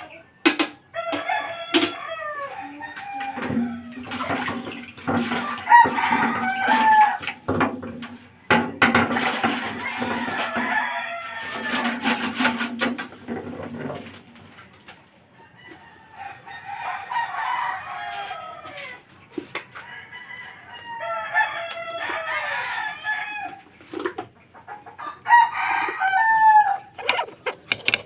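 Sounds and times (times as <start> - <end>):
roosters crowing: 0.0 - 12.8, 14.4 - 28.0
paddle knocking in metal canister: 3.3 - 14.3, 27.0 - 28.0.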